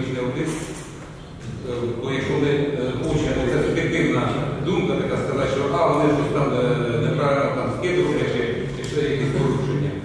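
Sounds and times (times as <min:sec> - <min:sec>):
men talking indistinctly: 0:00.0 - 0:10.0.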